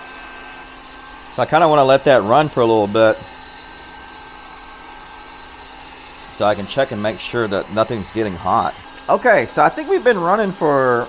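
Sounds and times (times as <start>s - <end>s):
heat gun fan hissing: 0.0s - 11.0s.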